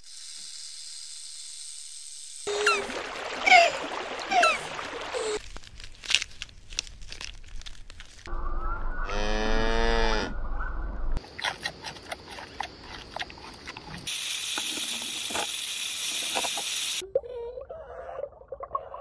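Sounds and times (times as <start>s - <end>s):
crunching and tearing of grazing: 5.4s - 8.3s
cow mooing: 9.1s - 10.4s.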